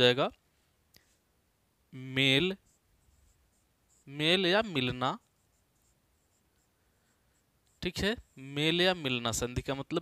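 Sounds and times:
man talking: 0.0s - 0.4s, 1.9s - 2.7s, 4.0s - 5.3s, 7.8s - 10.0s
marker writing on whiteboard: 2.2s - 9.9s.

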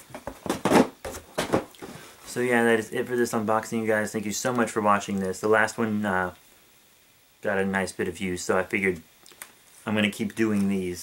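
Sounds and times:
cardboard rustles and scrapes: 0.2s - 2.1s.

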